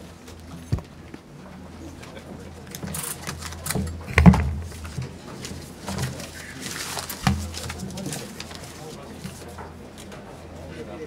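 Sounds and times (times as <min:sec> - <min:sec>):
low electrical hum: 0:00.0 - 0:10.6
people talking quietly: 0:00.0 - 0:11.0
small knocks: 0:03.3 - 0:06.2.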